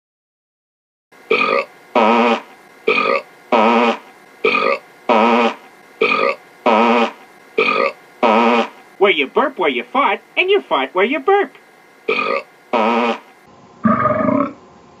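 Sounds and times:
cartoon burping: 1.3s - 8.7s, 12.1s - 13.2s, 13.8s - 14.6s
cartoon farting: 1.3s - 8.8s, 12.1s - 14.6s.

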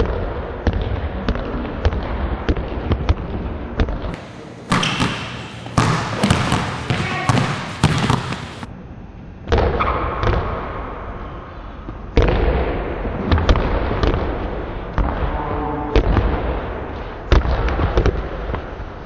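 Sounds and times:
basketballs bouncing on wooden floor: 0.0s - 8.7s, 17.3s - 18.6s.

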